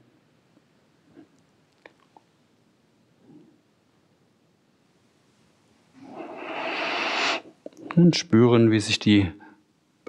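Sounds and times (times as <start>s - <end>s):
long breath close to microphone: 6.0s - 7.6s.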